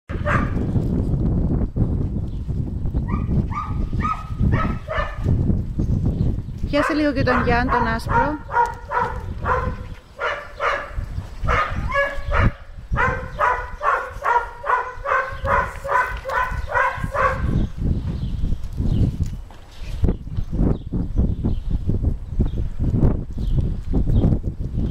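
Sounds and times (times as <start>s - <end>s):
dog yapping: 3.1s - 5.2s, 6.8s - 17.6s.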